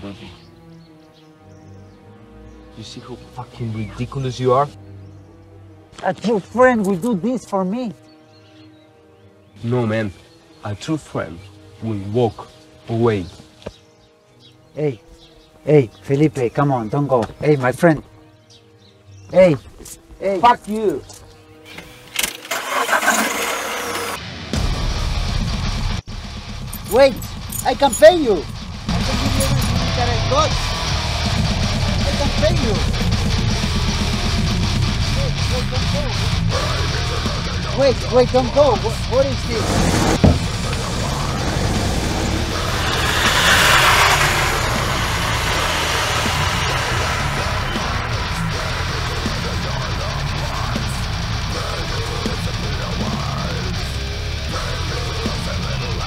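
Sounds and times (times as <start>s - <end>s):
car engine cranking and starting: 21.7s - 24.2s, 26.4s - 35.0s, 38.2s - 52.9s
car driving past: 39.3s - 52.2s
sharp bang: 39.9s - 41.0s.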